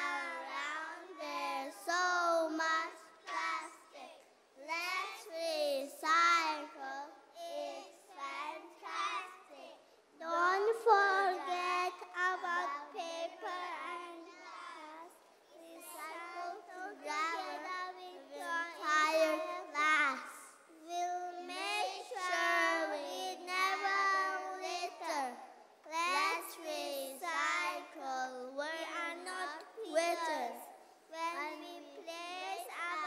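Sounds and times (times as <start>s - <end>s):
children chanting a poem: 0.0s - 33.0s.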